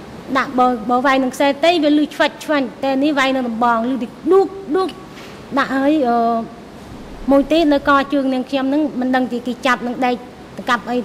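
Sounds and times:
woman speaking: 0.3s - 6.6s, 7.2s - 11.0s.

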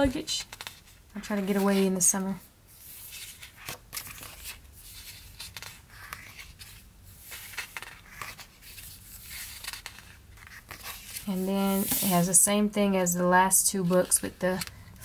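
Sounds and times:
paper sheets rustling: 2.8s - 12.4s.

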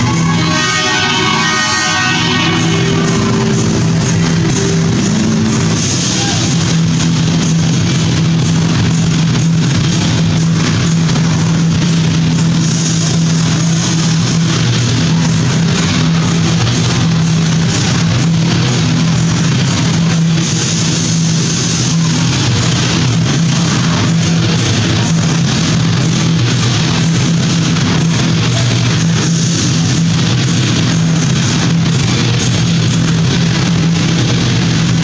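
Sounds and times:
loud rock music: 0.0s - 35.0s.

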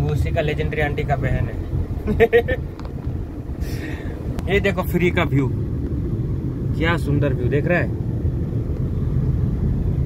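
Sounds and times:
engine and road noise: 0.0s - 10.0s.

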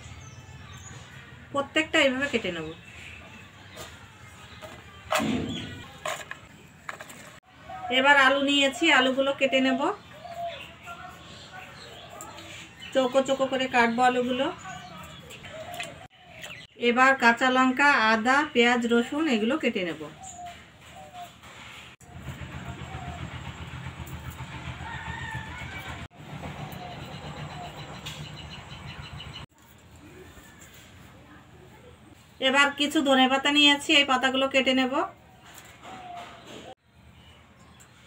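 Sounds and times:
low engine rumble: 20.4s - 32.3s.

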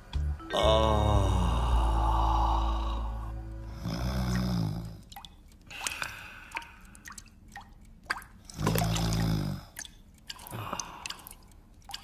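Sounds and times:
low snore-like voice: 0.6s - 5.0s
cartoon water drips: 3.8s - 12.0s.

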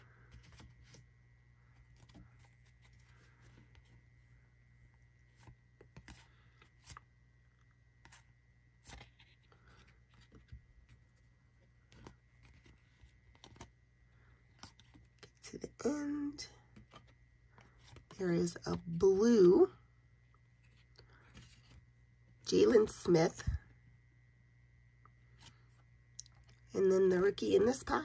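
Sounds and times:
low steady hum: 0.0s - 28.0s
trading cards flipping: 5.3s - 7.1s, 8.0s - 13.7s.

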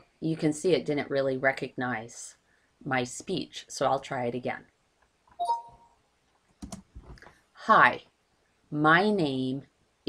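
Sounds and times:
two-tone chime: 5.4s - 5.9s.

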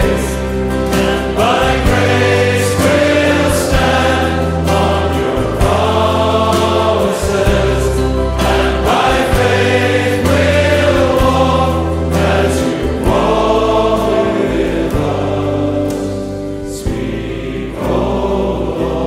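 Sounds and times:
choir singing worship song: 0.0s - 19.0s
long held bass notes: 0.0s - 19.0s.

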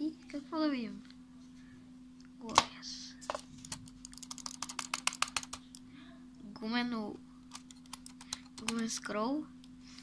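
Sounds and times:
computer mouse clicking: 3.6s - 5.8s, 7.5s - 8.9s.

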